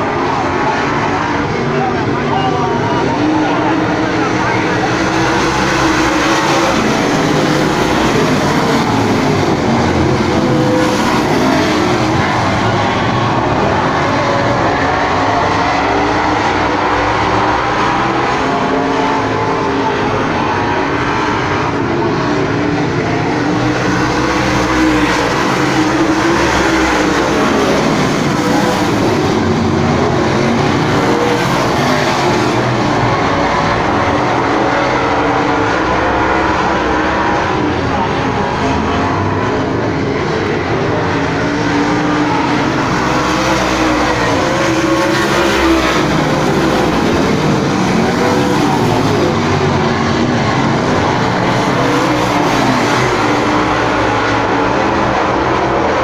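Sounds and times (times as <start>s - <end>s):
race car engines at full throttle: 0.0s - 56.0s.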